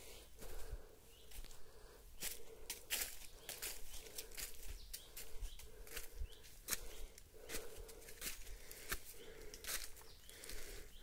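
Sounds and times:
footsteps on dry leaf litter: 0.4s - 11.0s.

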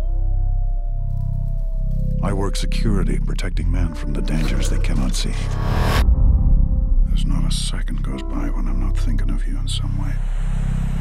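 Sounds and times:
deep pulsing drone: 0.0s - 11.0s.

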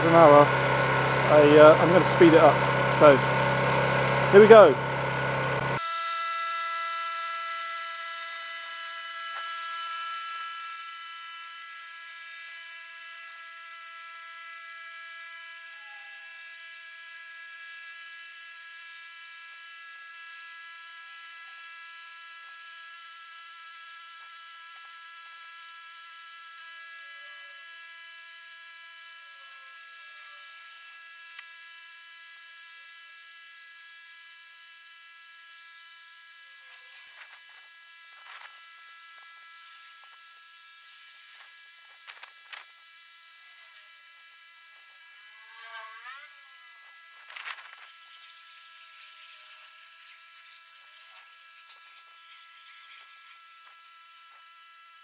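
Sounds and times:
high buzzing machine whine: 0.0s - 55.0s.

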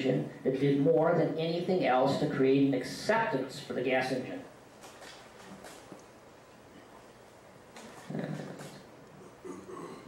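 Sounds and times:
faint room noise: 0.0s - 10.0s
man murmuring: 8.0s - 10.0s.

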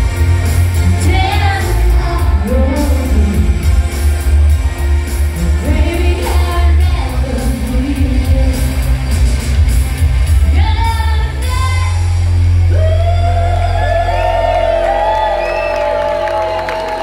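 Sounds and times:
live pop band: 0.0s - 12.9s
woman singing: 0.8s - 3.7s, 5.4s - 9.0s, 10.4s - 12.0s
crowd whooping: 12.1s - 17.0s.

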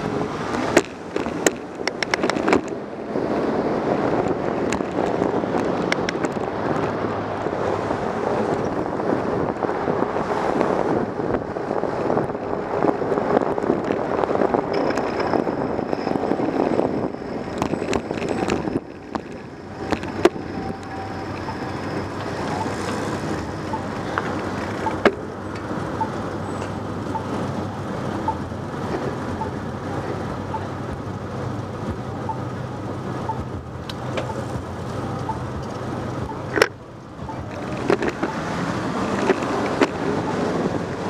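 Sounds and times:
wind rush: 0.0s - 32.1s, 32.7s - 41.0s
bicycle road noise: 0.0s - 41.0s
traffic low hum: 0.0s - 41.0s.

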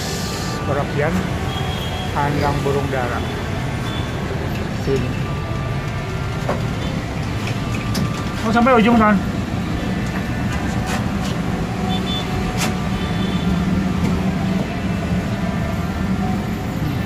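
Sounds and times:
traffic hum: 0.0s - 17.0s.

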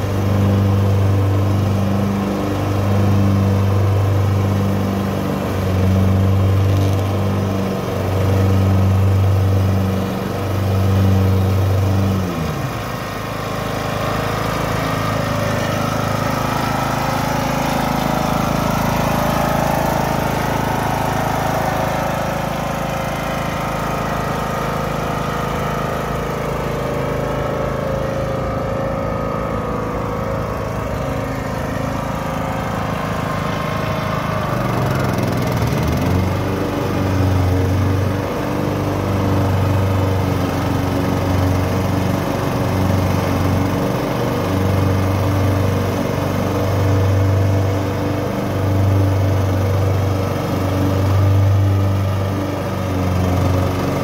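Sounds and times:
ride-on mower engine humming: 0.0s - 54.0s.

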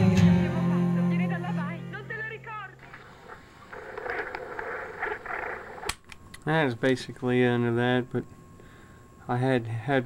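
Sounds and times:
muffled murmur and hiss: 0.2s - 10.0s
sharp click: 5.8s - 6.5s.

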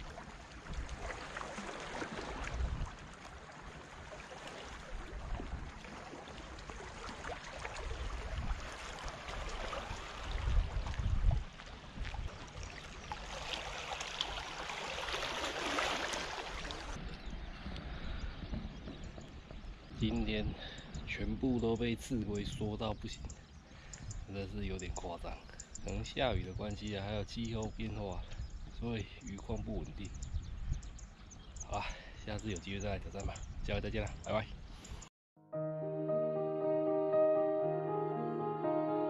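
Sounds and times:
wind gusts on microphone: 0.0s - 3.2s, 4.9s - 5.9s, 7.8s - 13.1s, 24.0s - 35.0s
water lapping among stones: 0.0s - 17.0s.

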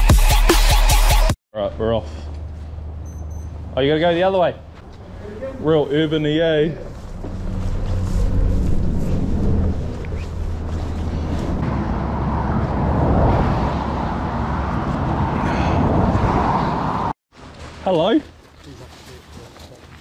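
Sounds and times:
road traffic rumble and tyre hiss: 1.6s - 17.8s.

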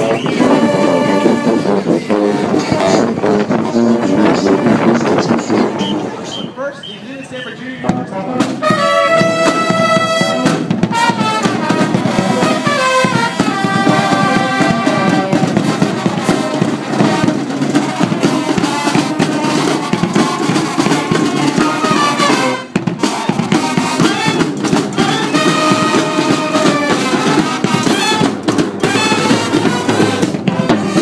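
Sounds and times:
driving drum beat: 0.0s - 6.0s, 7.2s - 31.0s
marching band playing: 0.0s - 31.0s.

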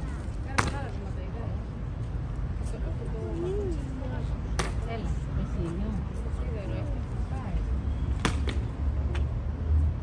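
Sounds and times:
low rumble of traffic or wind: 0.0s - 10.0s.

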